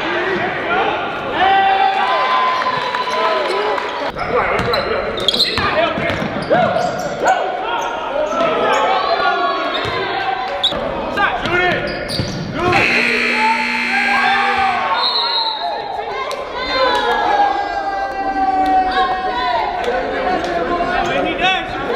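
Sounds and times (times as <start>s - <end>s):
sneakers squeaking: 11.9s - 13.9s
players' voices echoing: 12.6s - 15.1s.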